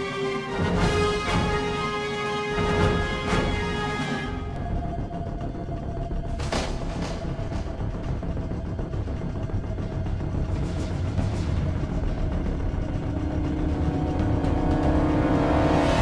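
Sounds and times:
aircraft engines droning: 0.0 - 16.0
background music: 0.0 - 16.0.

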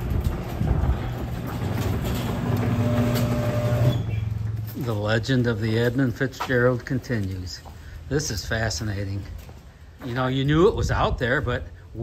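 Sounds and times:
garage door opener rumble: 0.0 - 4.8
constant low hum: 0.0 - 12.0.

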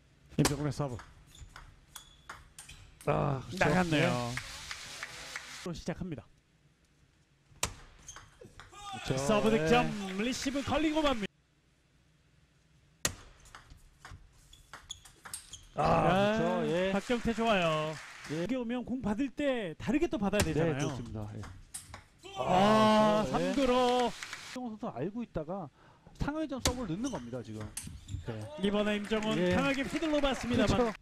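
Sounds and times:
table tennis ball pinging: 0.4 - 3.1
man crying out: 22.3 - 23.6.

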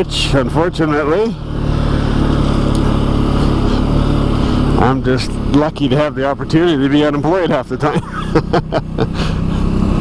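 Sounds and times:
atv engine running: 0.0 - 10.0.

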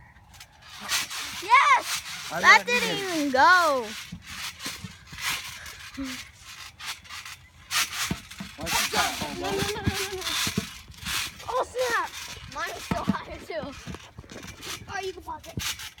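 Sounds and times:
knocks and rubbing: 6.8 - 16.0.

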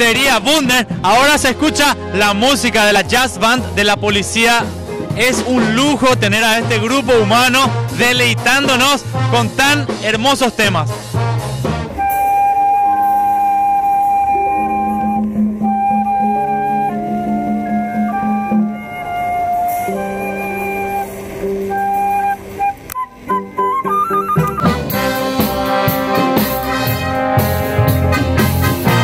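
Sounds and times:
jazz band with brass: 0.0 - 29.0
flute solo: 11.9 - 26.3.

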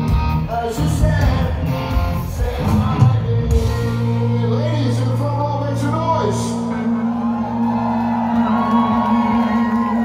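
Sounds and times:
punk rock band playing: 0.0 - 10.0
crowd shouting and whooping: 1.7 - 10.0.

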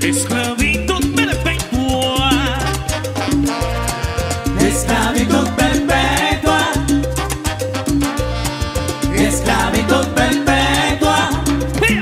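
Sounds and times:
heavy bass line: 0.0 - 12.0
latin dance band playing: 0.0 - 12.0
timbales and conga beat: 0.0 - 12.0
person singing lead vocal: 4.6 - 7.2, 9.1 - 12.0.

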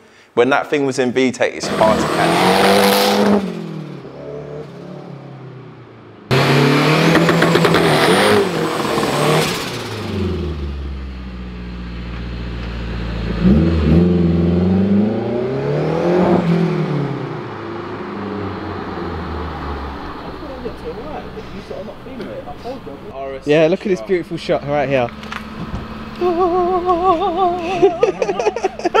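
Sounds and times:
car engine revving: 1.6 - 29.0.

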